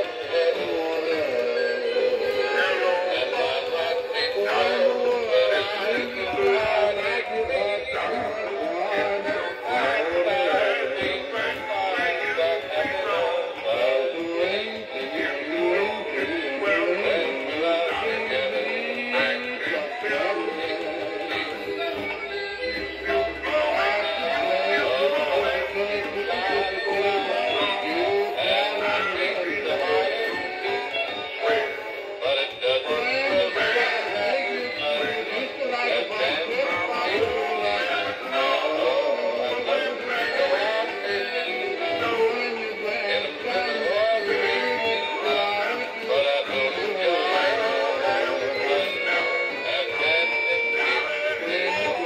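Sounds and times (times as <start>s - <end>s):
man singing: 0.0s - 52.0s
musical accompaniment: 0.0s - 52.0s.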